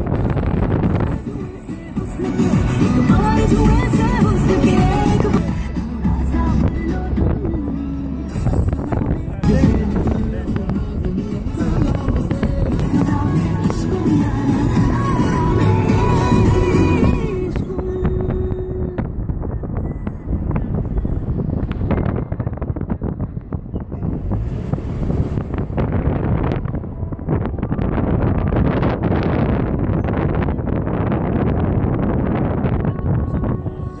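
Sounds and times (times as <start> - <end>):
low road rumble: 0.0 - 34.0
wind buffeting microphone: 0.0 - 34.0.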